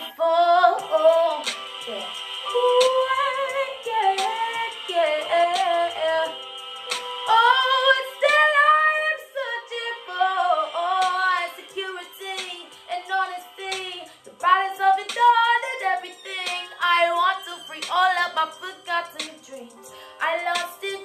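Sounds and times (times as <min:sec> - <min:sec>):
woman singing a cappella: 0:00.0 - 0:06.4, 0:07.3 - 0:21.0.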